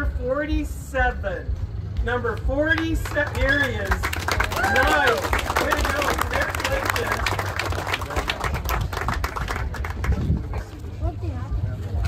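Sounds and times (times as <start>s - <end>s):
crowd applauding: 2.7s - 10.8s.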